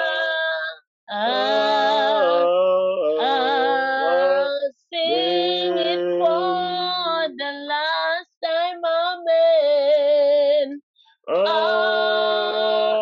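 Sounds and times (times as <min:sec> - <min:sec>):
women singing in harmony: 0:00.0 - 0:02.4, 0:03.2 - 0:10.8, 0:11.4 - 0:13.0.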